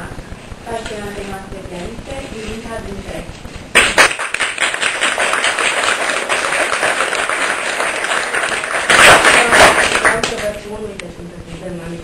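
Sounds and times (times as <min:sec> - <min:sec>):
audience applauding: 0:03.8 - 0:10.6.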